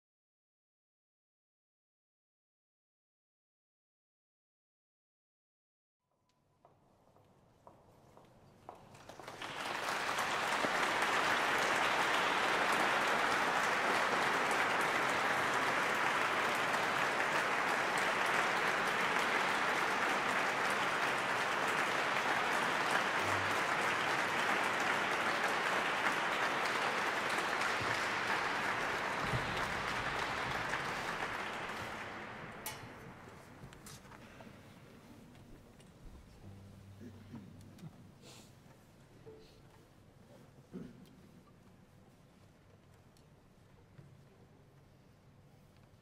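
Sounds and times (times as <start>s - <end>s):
audience applauding: 8.8s - 33.6s.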